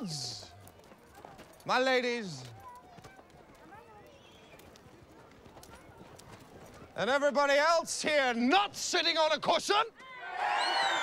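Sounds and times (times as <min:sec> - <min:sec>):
faint crowd murmur: 0:00.0 - 0:07.1.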